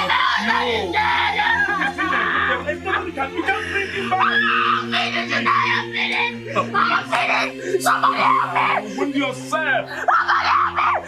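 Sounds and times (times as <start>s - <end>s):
person screaming and wailing: 0.0s - 9.2s, 9.9s - 11.0s
sustained background music tones: 0.0s - 11.0s.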